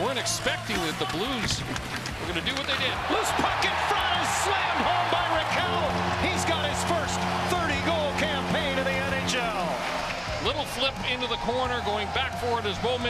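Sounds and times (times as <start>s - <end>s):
crowd cheering with whistles: 2.8s - 13.0s
goal horn blast: 4.6s - 10.2s.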